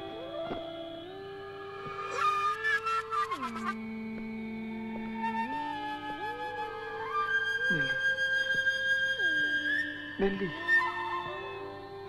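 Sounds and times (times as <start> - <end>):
held orchestral chord: 9.2 - 12.0.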